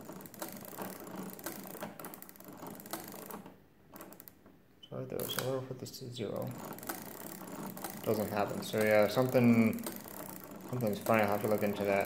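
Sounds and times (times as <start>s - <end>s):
gear mechanism clicking and ratcheting: 0.0s - 4.4s, 5.2s - 5.6s, 6.2s - 12.0s
person speaking: 4.8s - 6.7s, 8.0s - 9.9s, 10.7s - 12.0s.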